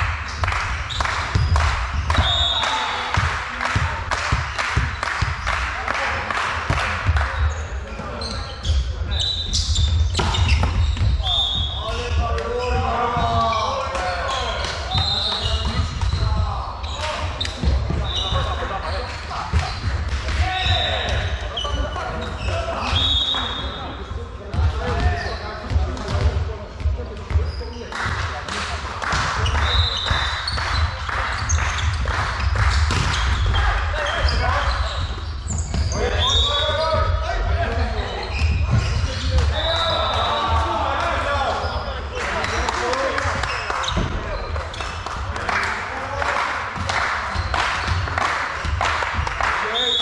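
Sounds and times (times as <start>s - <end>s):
volleyball hit and bouncing: 0.0s - 8.2s, 9.5s - 21.4s, 24.5s - 26.4s, 29.0s - 34.5s
sneakers squeaking on wooden court: 0.3s - 3.3s, 7.0s - 28.0s, 29.1s - 40.9s, 41.5s - 45.0s.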